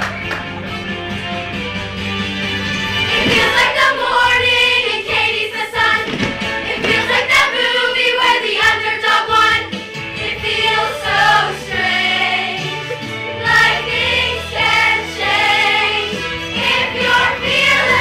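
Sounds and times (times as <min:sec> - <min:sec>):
instrumental accompaniment: 0:00.0 - 0:18.0
young voices singing in chorus: 0:03.1 - 0:18.0.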